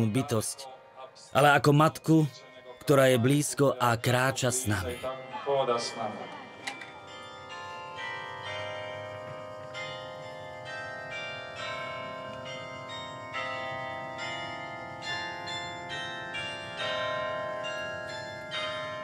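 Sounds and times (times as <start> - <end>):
bells ringing: 0.0 - 19.0.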